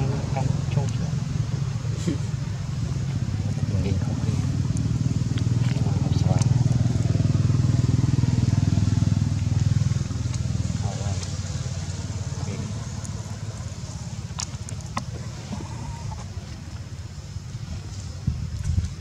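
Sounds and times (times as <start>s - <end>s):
motor engine running: 0.0s - 19.0s.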